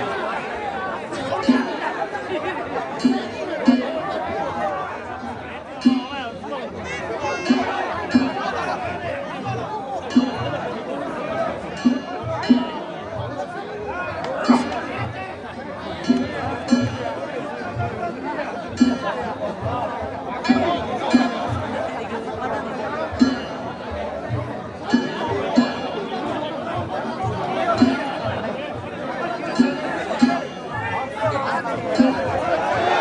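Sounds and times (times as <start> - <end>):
crowd chatter: 0.0 - 33.0
drum and gongs beating: 0.0 - 33.0.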